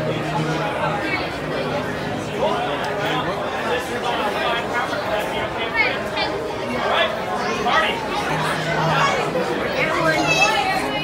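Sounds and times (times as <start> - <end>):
crowd chatter in large hall: 0.0 - 11.0.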